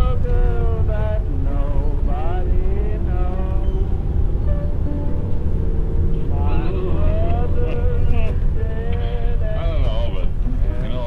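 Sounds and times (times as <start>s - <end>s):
car driving rumble: 0.0s - 11.0s.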